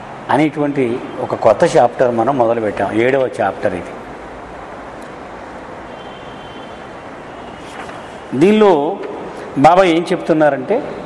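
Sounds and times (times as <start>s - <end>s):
steady background noise: 0.0s - 11.0s
faint thin high whine: 5.8s - 8.4s.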